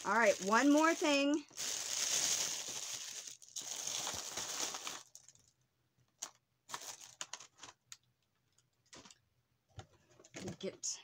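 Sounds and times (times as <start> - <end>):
packaging rustling and crinkling: 0.0 - 5.5, 6.2 - 8.0.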